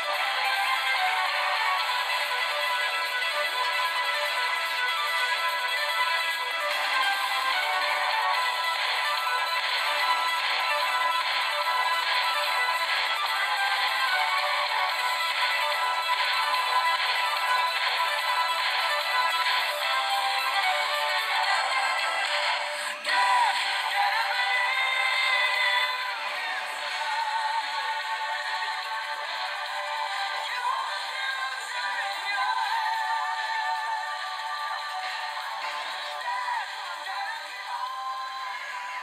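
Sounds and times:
cartoon action music: 0.0 - 36.8.

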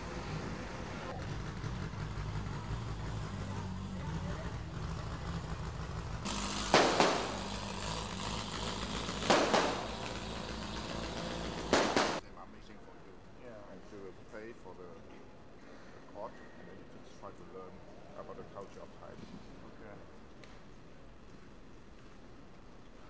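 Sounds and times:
low engine hum: 0.0 - 12.2
sharp bangs: 6.2 - 12.2.

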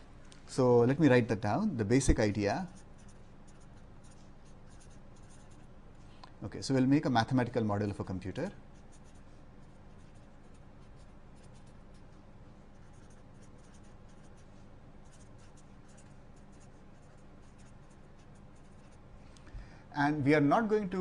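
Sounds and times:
steady low hum: 0.0 - 21.0
marker pen scratching on paper: 2.6 - 6.1, 8.7 - 19.1.

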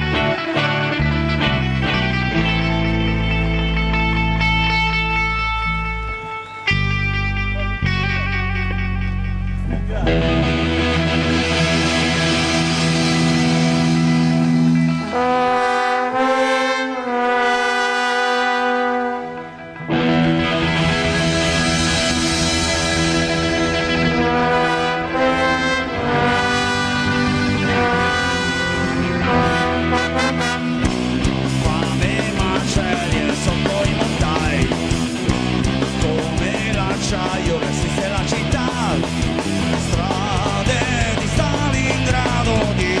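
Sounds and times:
electric guitar chord ringing: 0.0 - 17.3, 17.9 - 37.8
ska punk band playing live: 0.0 - 43.0
brass section holding notes: 10.4 - 33.2.

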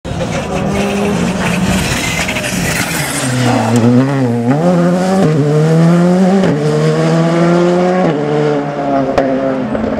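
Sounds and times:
rally car engine: 0.1 - 9.9.

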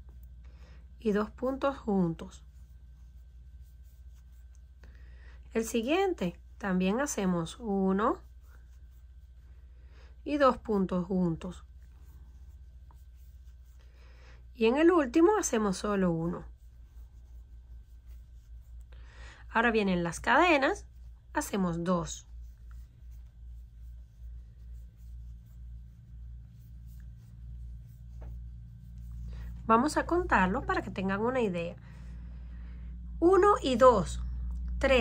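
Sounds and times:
steady low hum: 0.0 - 35.0
yarn scratching on crochet hook: 1.3 - 4.7, 10.3 - 13.8, 14.6 - 18.9, 19.6 - 31.5
person speaking: 29.1 - 31.7.

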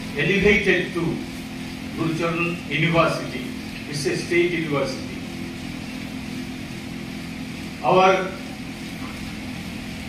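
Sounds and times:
steady low hum with hiss: 0.0 - 10.0.

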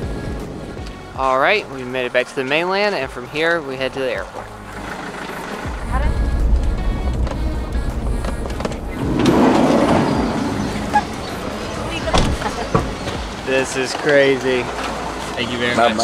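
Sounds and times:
car engine and tyres rumbling: 0.0 - 16.0
crowd chatter: 7.4 - 16.0.

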